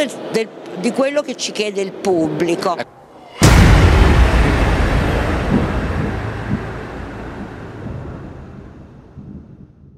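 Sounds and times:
deep rushing rumble: 0:03.3 - 0:09.9.

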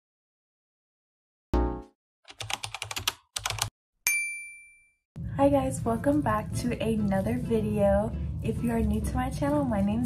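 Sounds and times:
bell ding: 0:04.1 - 0:05.0.

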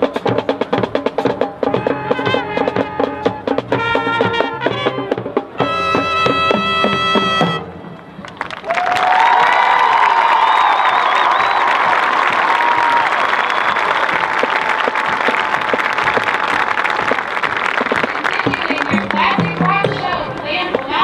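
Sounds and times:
crowd applauding and cheering: 0:08.0 - 0:21.0.

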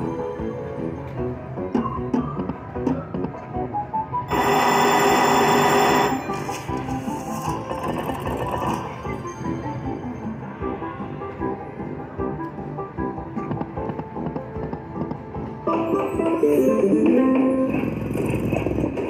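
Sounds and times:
electronic bell ringing: 0:04.3 - 0:06.6.

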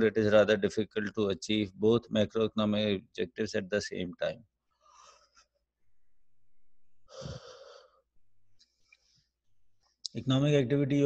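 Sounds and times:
person breathing: 0:04.8 - 0:05.5, 0:07.0 - 0:09.4.

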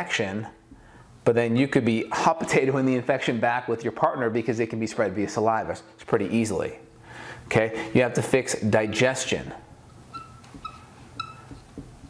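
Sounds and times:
marker squeaking on a whiteboard: 0:09.9 - 0:12.0.

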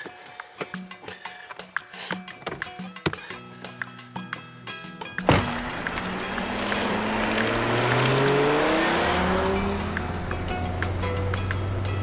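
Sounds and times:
car accelerating past: 0:05.2 - 0:11.0.

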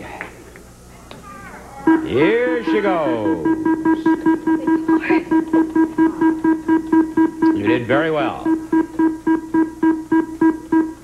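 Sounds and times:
rapid short beeping tones: 0:01.9 - 0:11.0.

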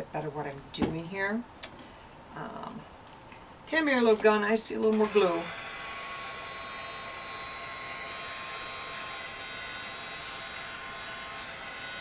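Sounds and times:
electric fan whirring hum: 0:00.0 - 0:12.0.

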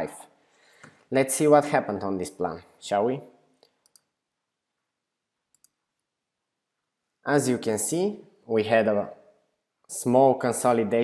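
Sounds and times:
computer mouse clicks: 0:03.6 - 0:04.2, 0:05.5 - 0:05.9.

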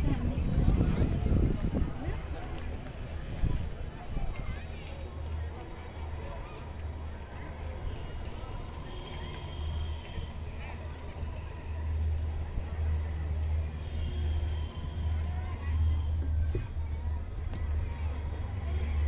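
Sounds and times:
faint passenger voices: 0:00.0 - 0:19.0
gondola cabin rumble: 0:00.0 - 0:19.0.

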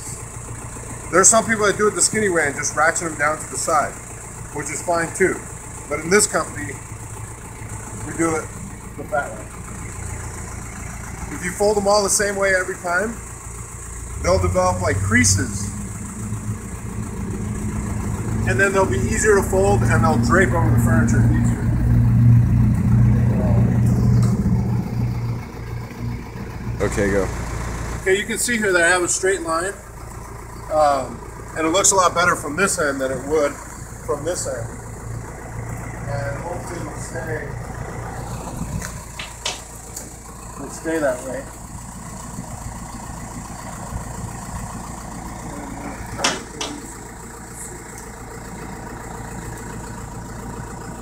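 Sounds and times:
vehicle engine idling: 0:00.0 - 0:51.0.

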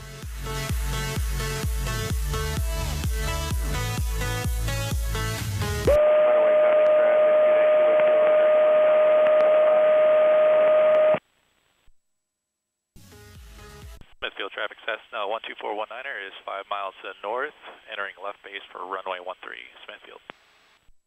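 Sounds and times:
pilot speaking over radio: 0:14.2 - 0:20.3.

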